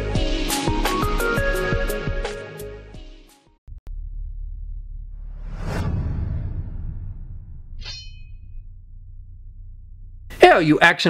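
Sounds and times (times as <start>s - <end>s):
low rumble: 3.7s - 10.5s
whoosh effect: 5.2s - 8.5s.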